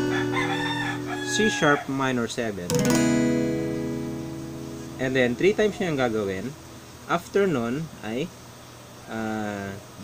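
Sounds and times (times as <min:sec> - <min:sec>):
acoustic guitar chord ringing: 0:00.0 - 0:08.0.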